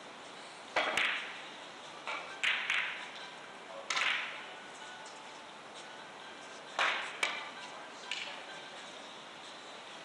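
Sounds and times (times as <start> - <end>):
billiard balls clicking: 2.1 - 3.0.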